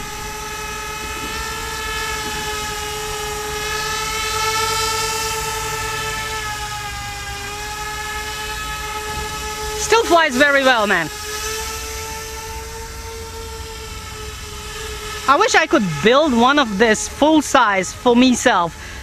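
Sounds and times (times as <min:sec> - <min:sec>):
drone propellers whining: 0:00.0 - 0:19.0.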